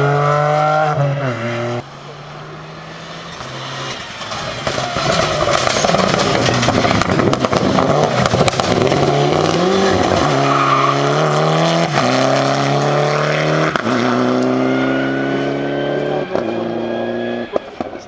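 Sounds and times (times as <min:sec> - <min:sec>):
rally car engine at full throttle: 0:00.0 - 0:18.0
tyre noise: 0:01.7 - 0:18.0.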